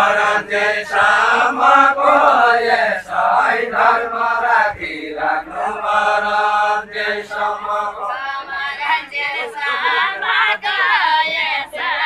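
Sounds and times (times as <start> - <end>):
group singing folk song: 0.0 - 12.0.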